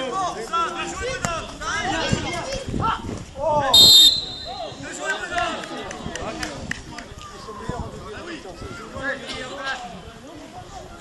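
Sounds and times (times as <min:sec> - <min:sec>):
voices calling out and talking: 0:00.0 - 0:11.0.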